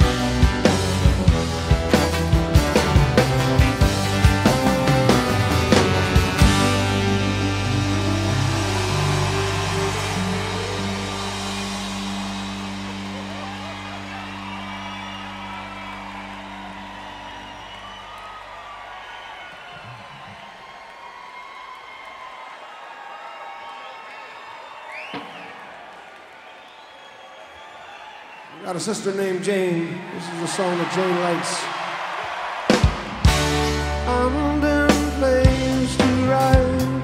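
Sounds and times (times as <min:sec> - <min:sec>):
rock band sustained chord: 0:00.0 - 0:18.1, 0:33.1 - 0:37.0
audience cheering and whooping: 0:00.0 - 0:34.3.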